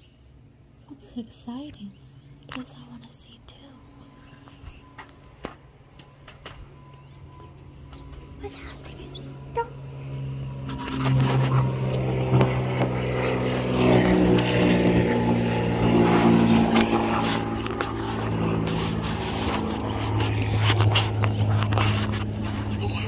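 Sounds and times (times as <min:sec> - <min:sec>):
engine running close by: 0:03.6 - 0:23.0.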